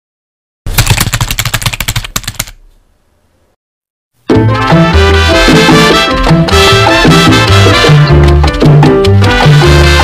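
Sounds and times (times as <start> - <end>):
rapid automatic gunfire: 0.7 - 2.5.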